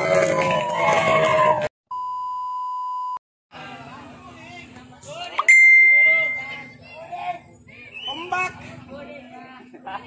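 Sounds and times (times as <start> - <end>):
voices: 3.6 - 10.0
bell-like ding: 5.4 - 6.7.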